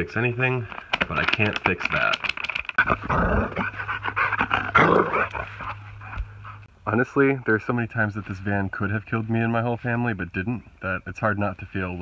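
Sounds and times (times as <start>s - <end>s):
man speaking: 0.0s - 2.2s, 6.9s - 12.0s
low hum: 2.8s - 10.8s
dog breathing: 3.6s - 6.7s.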